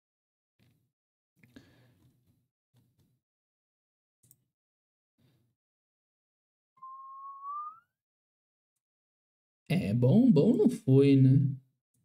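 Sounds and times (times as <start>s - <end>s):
short rising whistle: 6.8s - 8.0s.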